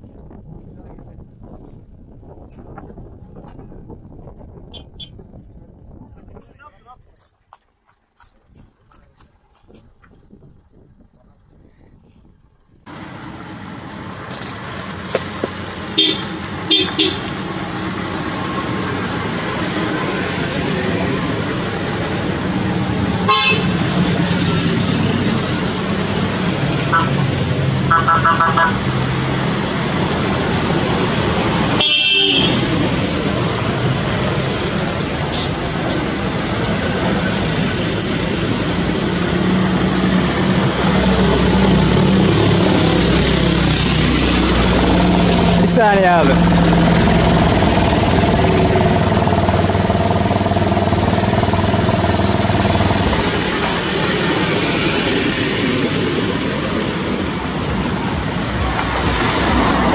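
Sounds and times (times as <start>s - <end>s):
vehicles driving on gravel: 0.0s - 59.9s
car horn toots: 4.7s - 5.2s, 15.9s - 17.4s, 23.2s - 23.8s, 26.9s - 27.3s, 27.9s - 28.8s, 31.8s - 32.8s.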